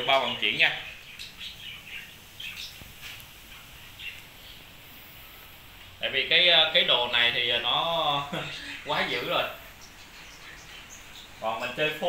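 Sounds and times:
bird chirps: 0:00.0 - 0:04.8, 0:08.3 - 0:12.0.

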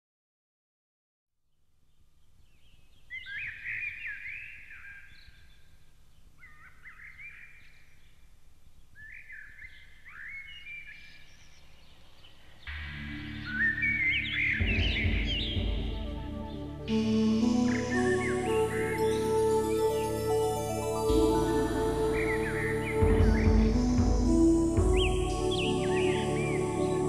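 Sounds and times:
bird chirps: 0:01.9 - 0:27.0
soft new-age instrumental music: 0:12.3 - 0:27.0.

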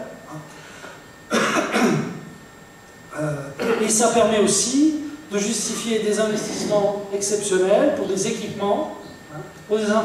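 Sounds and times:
man coughing: 0:01.3 - 0:02.3, 0:03.2 - 0:04.0.

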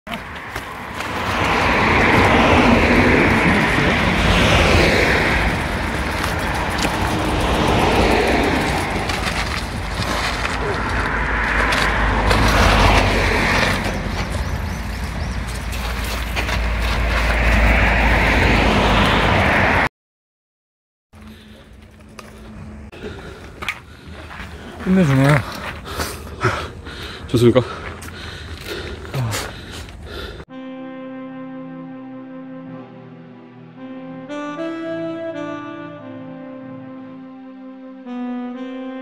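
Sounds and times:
low wind rumble: 0:00.2 - 0:19.9
heavy breathing: 0:21.2 - 0:30.5.

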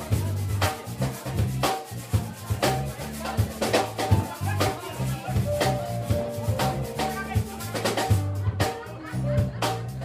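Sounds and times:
drums and percussion: 0:00.0 - 0:10.0
electric bass line: 0:00.0 - 0:10.0
salsa band playing: 0:00.0 - 0:10.0.

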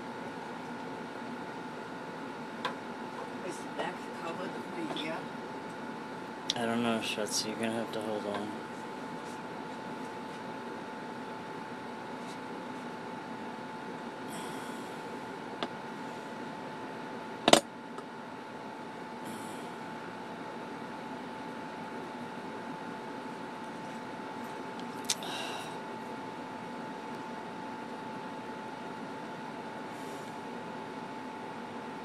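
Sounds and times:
background hum: 0:00.0 - 0:32.0.

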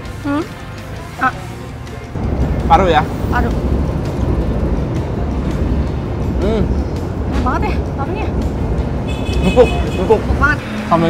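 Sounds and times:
faint background music: 0:00.0 - 0:03.6
road traffic rumble: 0:00.0 - 0:11.0
person humming: 0:06.4 - 0:06.8.

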